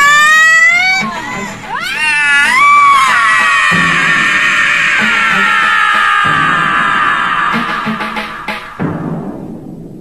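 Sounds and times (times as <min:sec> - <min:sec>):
long held cry: 0:00.0 - 0:08.8
dramatic music with drums: 0:00.1 - 0:10.0.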